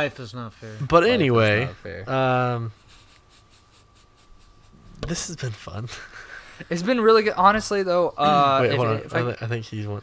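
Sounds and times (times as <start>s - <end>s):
light repeated scratching: 2.7s - 6.4s.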